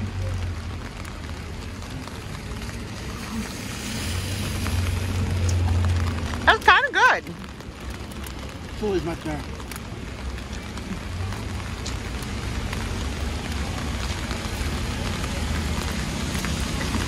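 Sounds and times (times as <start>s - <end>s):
low traffic rumble: 0.0s - 17.0s
rain on wet street: 0.0s - 17.0s.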